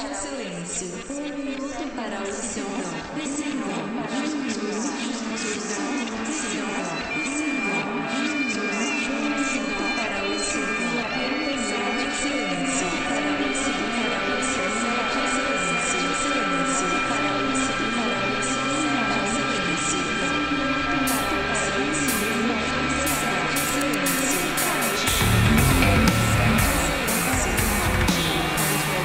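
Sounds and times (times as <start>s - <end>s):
steady high synth tones: 9.3s - 29.0s
low drone: 9.9s - 29.0s
wavering sliding synth tone: 10.0s - 29.0s.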